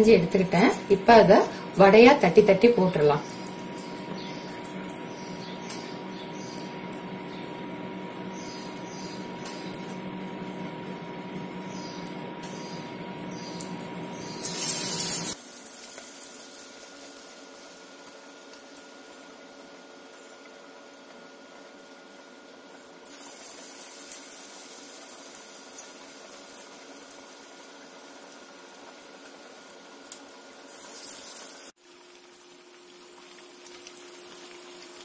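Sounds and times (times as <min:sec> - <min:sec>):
crackles in frying oil: 0:00.0 - 0:35.0
food deep-frying in oil: 0:00.0 - 0:35.0.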